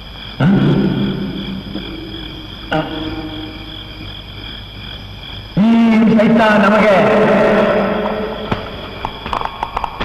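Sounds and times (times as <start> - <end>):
frogs croaking: 0.0 - 10.0
high insect-like whine: 0.0 - 10.0.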